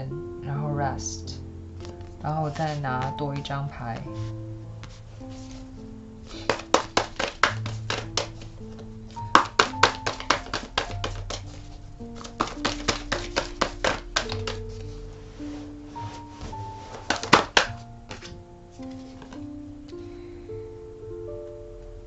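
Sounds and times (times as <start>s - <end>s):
soft plucked background music: 0.0s - 22.0s
cards being shuffled: 4.0s - 19.5s.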